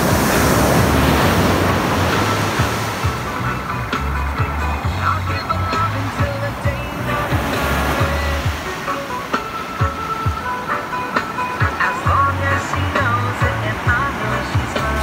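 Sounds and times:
instrumental song opening: 0.0 - 15.0.

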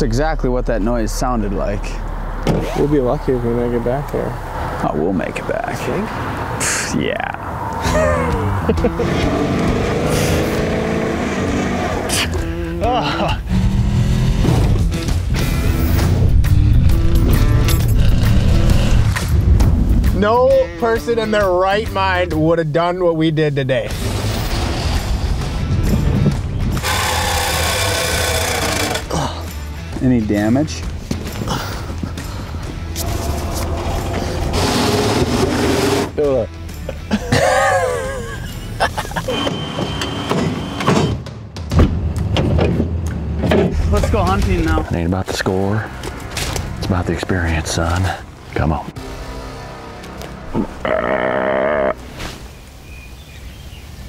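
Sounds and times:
vehicle driving on dirt road: 0.0 - 20.2, 29.0 - 37.1, 41.6 - 50.8
music: 7.9 - 10.7, 11.8 - 50.9
harsh mechanical grinding and rattling: 26.7 - 29.2, 33.0 - 36.2
deer grunt: 50.5 - 52.0.

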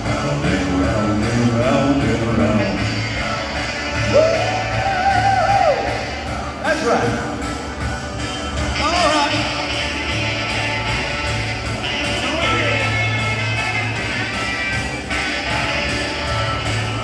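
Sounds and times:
man singing into a microphone: 0.0 - 6.0
backing music through speaker: 0.0 - 17.0.

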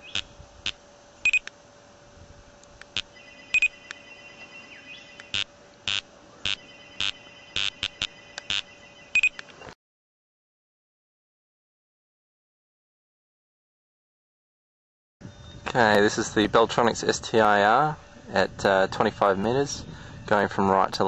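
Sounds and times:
steady high tone: 3.1 - 9.4
short sharp electronic beeps: 3.2 - 3.8, 5.3 - 9.4.

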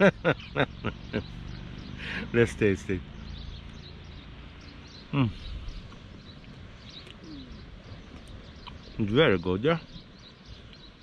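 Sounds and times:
high bird chirps: 0.0 - 11.0.

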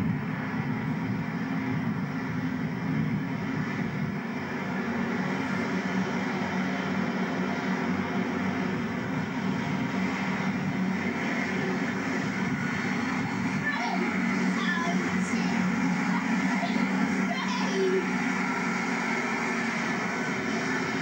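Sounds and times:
diesel train engine drone: 0.0 - 21.0.

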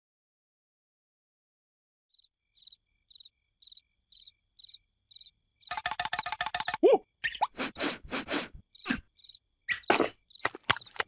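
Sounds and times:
cricket chirping: 2.1 - 11.0
fast rattle of clicks: 5.7 - 6.8.

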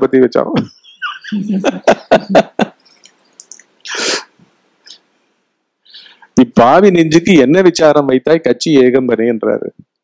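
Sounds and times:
man laughing: 0.8 - 2.8.

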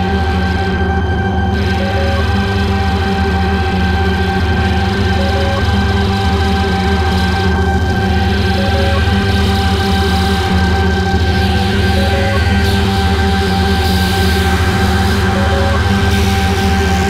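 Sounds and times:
dark droning music: 0.0 - 17.0.

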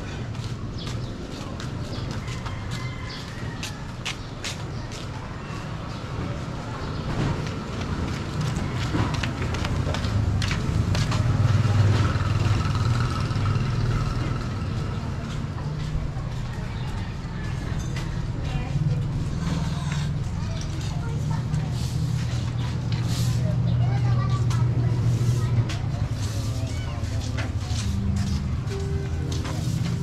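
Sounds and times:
vehicle engine rumble: 3.9 - 30.0.

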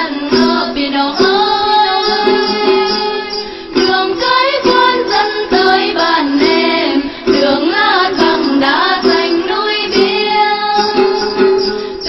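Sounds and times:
long-necked lutes: 0.0 - 12.0
woman singing: 0.0 - 12.0.

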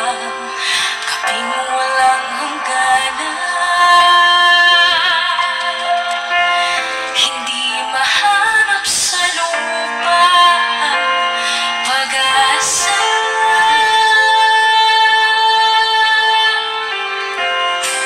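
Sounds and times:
backing track: 0.0 - 18.0
woman singing pop ballad: 0.0 - 18.0.

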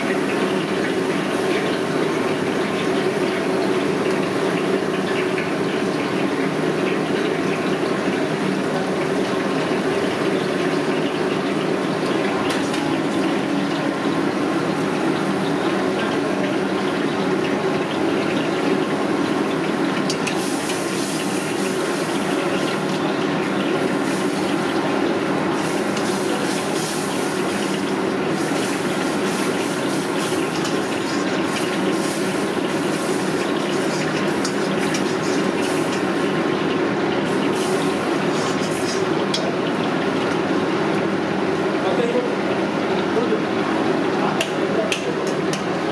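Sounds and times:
oil sizzling and crackling: 0.0 - 41.8
gas burner roaring: 0.0 - 45.9.

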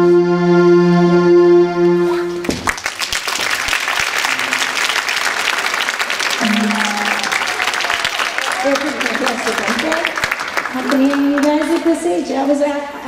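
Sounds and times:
audience applause: 2.4 - 12.0
electronic keyboards holding chord: 6.4 - 7.5.

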